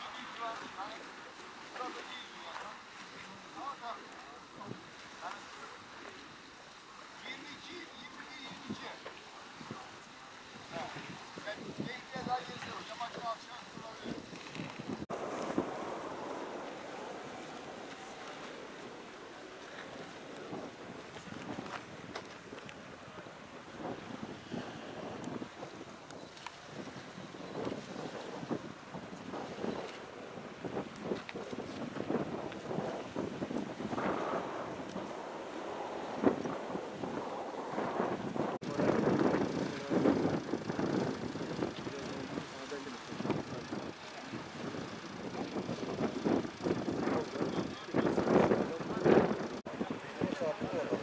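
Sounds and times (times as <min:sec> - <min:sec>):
people talking outdoors: 0:00.0 - 0:15.1, 0:38.6 - 0:51.0.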